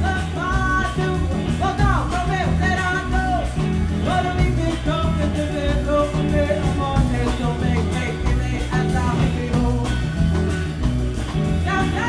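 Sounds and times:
woman singing into a microphone: 0.0 - 10.2, 11.4 - 12.0
deep bass line: 0.0 - 12.0
electric guitar: 0.0 - 12.0.

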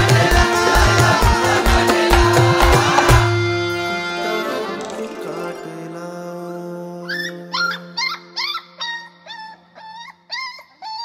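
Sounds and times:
dog yelping and whimpering: 7.1 - 11.0.

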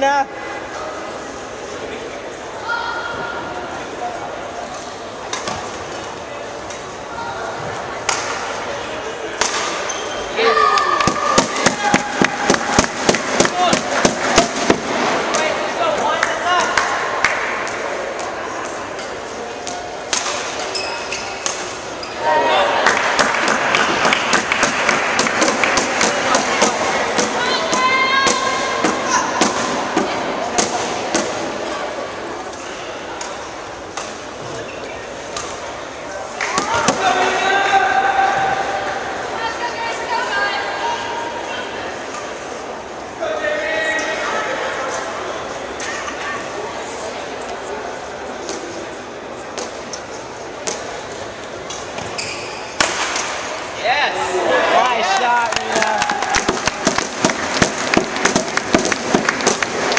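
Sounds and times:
spectators shouting: 10.3 - 15.9, 22.2 - 30.8
racket hitting shuttlecock: 23.1 - 31.4, 52.8 - 53.5
applause: 55.1 - 59.9.

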